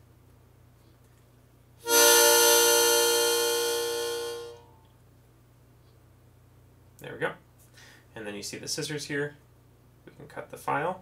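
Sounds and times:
harmonica long held note: 1.8 - 4.8.

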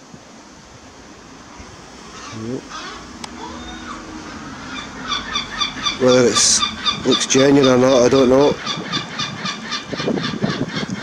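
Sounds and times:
birds calling: 0.9 - 11.0
fast repeated chattering call: 2.0 - 10.8.

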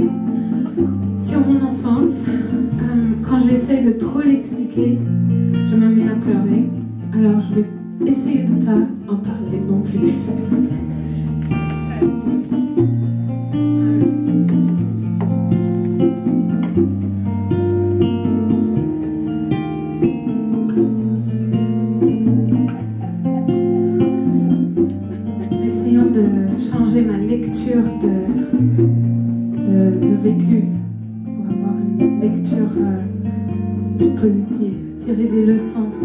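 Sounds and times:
acoustic guitar chords: 4.8 - 35.1.

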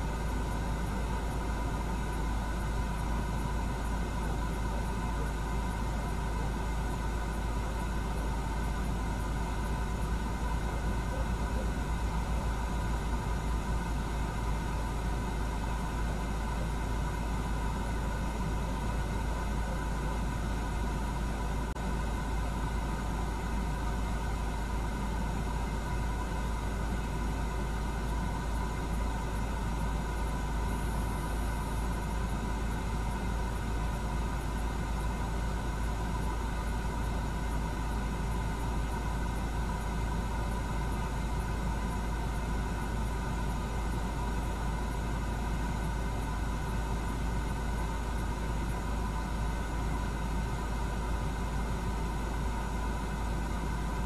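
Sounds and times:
vehicle idling rumble: 0.0 - 54.0.

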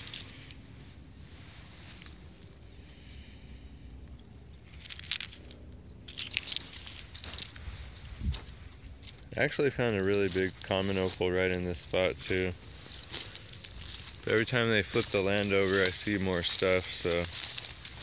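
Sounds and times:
rustling through dry straw: 0.0 - 3.8, 6.1 - 18.0
low steady rumble: 0.0 - 18.0.

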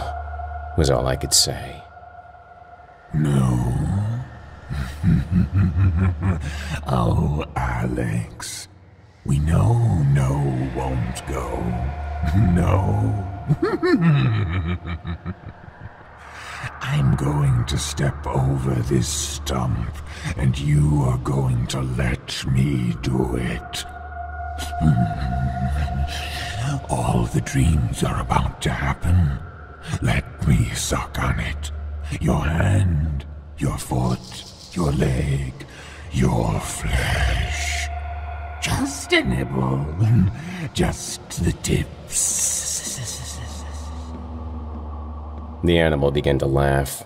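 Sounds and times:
deep creature voice: 0.0 - 1.9, 3.1 - 15.5, 16.2 - 44.3
droning score tone: 0.0 - 46.9
man laughing deeply: 4.7 - 6.9, 13.5 - 15.9.

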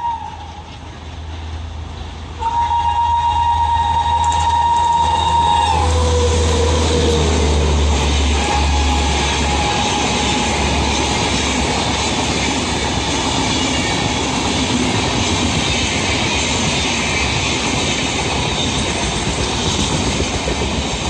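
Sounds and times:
train wheels rushing on rails: 0.0 - 21.0.

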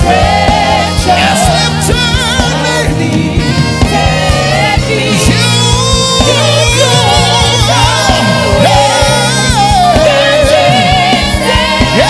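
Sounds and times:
bass notes: 0.0 - 12.0
drum hits: 0.0 - 12.0
group singing gospel: 0.0 - 12.0.

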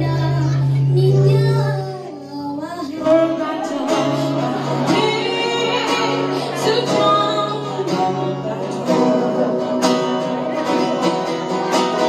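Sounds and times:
woman singing: 0.0 - 10.8
musical accompaniment: 0.0 - 12.0.

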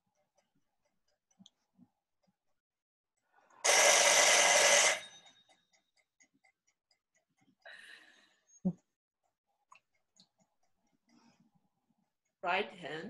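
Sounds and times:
faint clock ticking: 0.0 - 2.4, 5.0 - 13.0.

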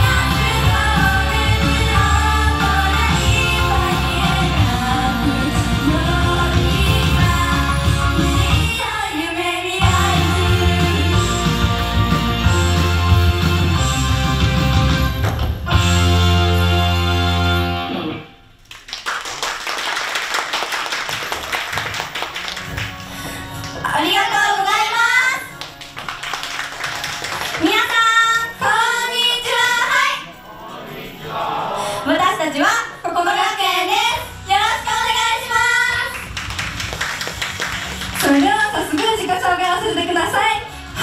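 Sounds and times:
pop backing track: 0.0 - 9.1, 9.8 - 18.0
girls singing pop song: 0.0 - 11.8, 27.6 - 30.3
audience applauding: 18.6 - 23.8, 25.5 - 28.1, 35.9 - 39.3
hand clapping: 18.6 - 23.8, 25.6 - 27.7, 35.9 - 39.2.

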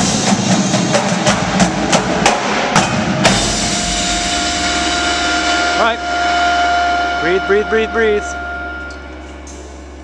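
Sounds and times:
drumline cutoff hit: 0.0 - 9.6
crash cymbals ringing: 2.9 - 10.0
steady held tone: 3.2 - 10.0.

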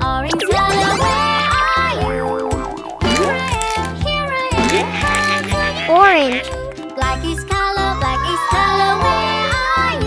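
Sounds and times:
bouncy children's song music: 0.0 - 10.0
wobbling cartoon sound effect: 4.6 - 6.6.

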